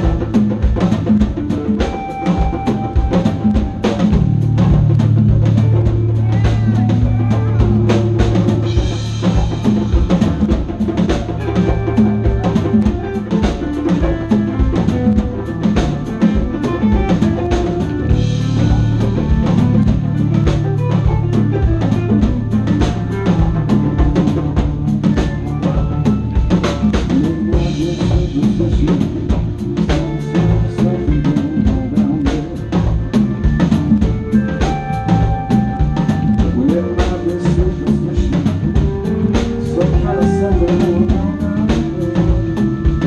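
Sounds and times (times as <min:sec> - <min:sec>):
blues-rock band playing: 0:00.0 - 0:43.0
drum kit beat: 0:00.0 - 0:43.0
harmonica: 0:00.0 - 0:43.0.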